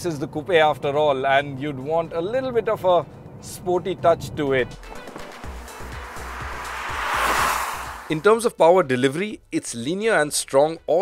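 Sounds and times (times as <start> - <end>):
background music: 4.2 - 7.3
car tyre and wind noise passing: 4.8 - 8.5.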